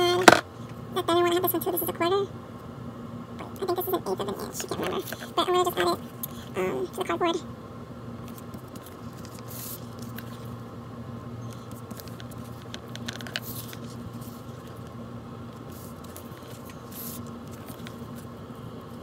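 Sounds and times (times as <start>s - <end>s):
crinkly tape handling noises: 8.2s - 10.6s, 11.4s - 19.0s.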